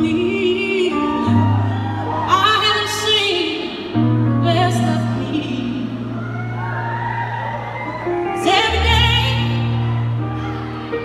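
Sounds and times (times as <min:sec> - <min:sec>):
audience cheering and screaming: 0:00.7 - 0:04.0, 0:05.9 - 0:11.0.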